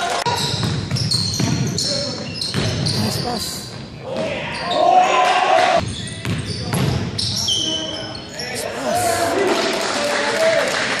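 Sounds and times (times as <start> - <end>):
players' voices in echoing gym: 0.0 - 10.9.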